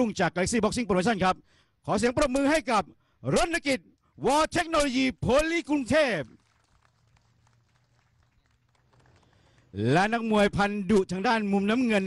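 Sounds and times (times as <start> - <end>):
scattered hand claps: 6.2 - 9.8.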